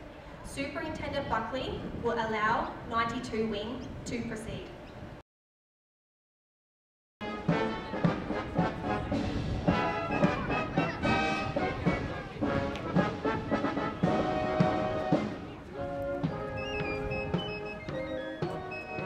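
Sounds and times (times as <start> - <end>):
military brass band playing a march: 7.2 - 19.0
steady drum beat: 7.3 - 15.5.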